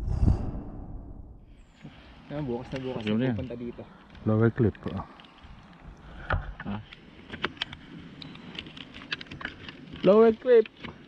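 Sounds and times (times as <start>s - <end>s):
light clicks and ticks: 2.7s - 11.0s.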